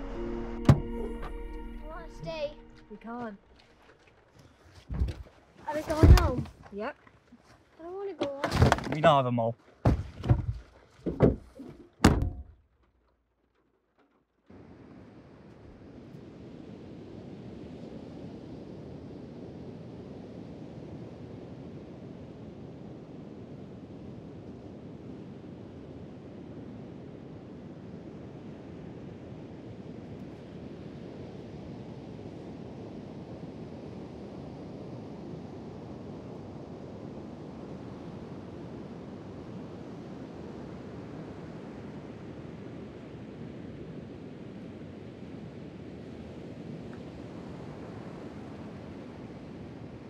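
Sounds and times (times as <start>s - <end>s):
car tailgate slamming shut: 0.6s - 1.4s, 12.0s - 12.6s
wind on beach: 14.5s - 50.0s.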